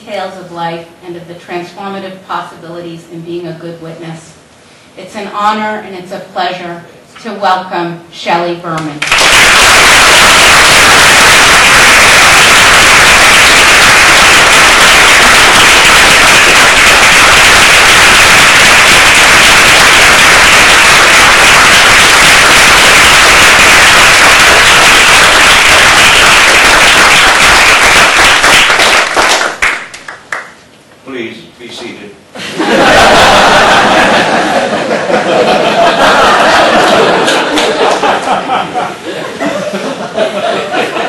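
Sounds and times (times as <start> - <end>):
audience applause: 9.0 - 30.5, 33.0 - 38.3.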